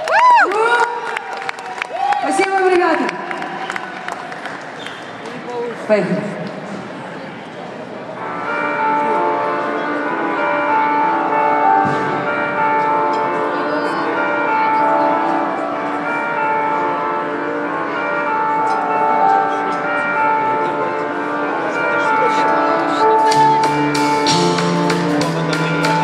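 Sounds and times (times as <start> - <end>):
bell-like chiming chords: 8.1 - 26.0
live band song intro: 23.1 - 26.0.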